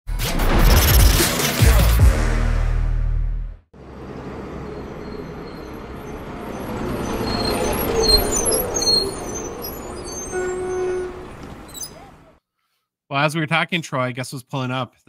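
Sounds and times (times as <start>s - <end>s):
bus engine rumble: 3.8s - 12.4s.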